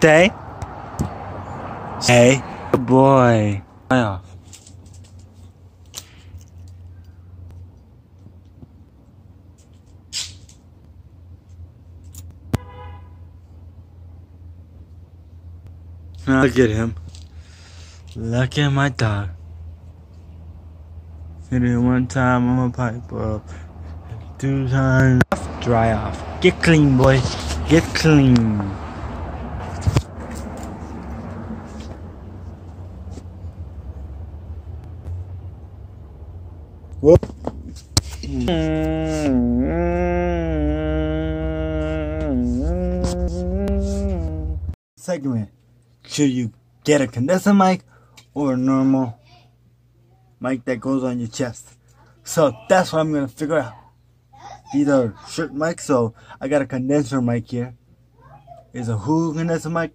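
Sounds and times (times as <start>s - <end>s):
low traffic hum: 0.0s - 59.9s
car horn toot: 12.5s - 13.4s.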